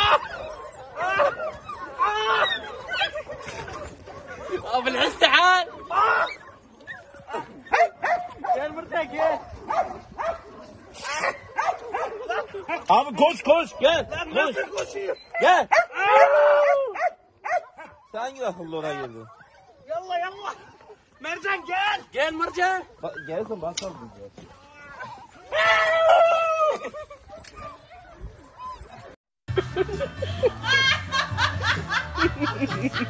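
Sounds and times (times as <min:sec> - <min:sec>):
puppies yipping and whining: 0:00.0 - 0:29.2.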